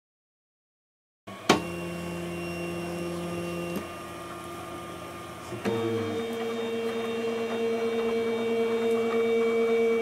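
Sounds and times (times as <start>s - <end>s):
printer humming with pitched tones: 1.3s - 10.0s.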